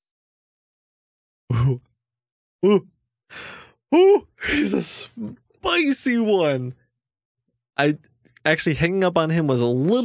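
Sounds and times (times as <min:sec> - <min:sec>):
breathy sigh: 0:03.3 - 0:05.3.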